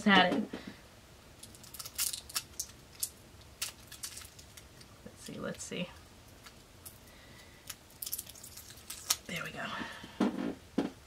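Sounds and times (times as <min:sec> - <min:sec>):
package torn open by hand: 0:01.4 - 0:04.9, 0:07.7 - 0:09.3.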